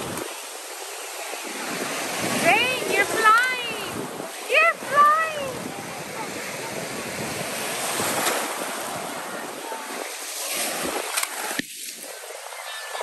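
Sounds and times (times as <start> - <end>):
small waves washing around legs: 0.0 - 13.0.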